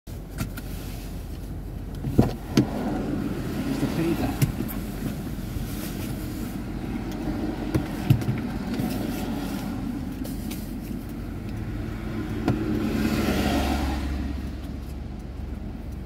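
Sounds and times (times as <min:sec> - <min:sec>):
motor vehicle engine rumbling: 0:00.1 - 0:16.0
sharp knocks and clicks: 0:12.3 - 0:12.8.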